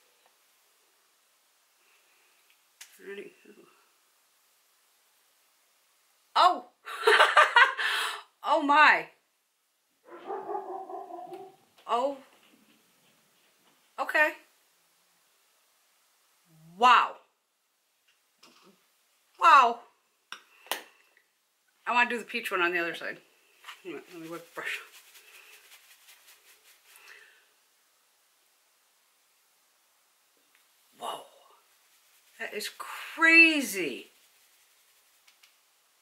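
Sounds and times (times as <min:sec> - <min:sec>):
brush airy flicks: 0:23.6 - 0:27.1, 0:31.6 - 0:35.7.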